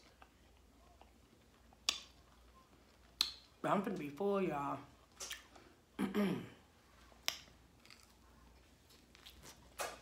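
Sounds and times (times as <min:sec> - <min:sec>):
mouth clicks while eating: 0:01.7 - 0:02.2, 0:03.1 - 0:03.5.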